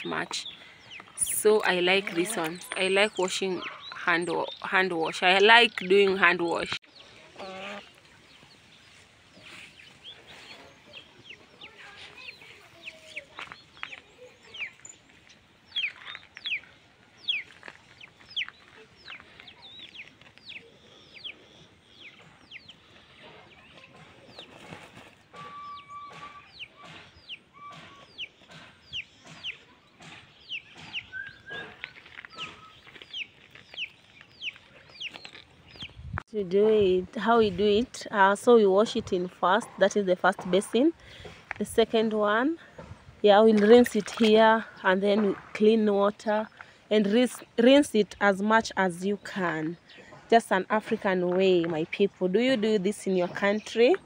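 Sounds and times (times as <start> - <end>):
chickens chirping: 0.0 - 54.0.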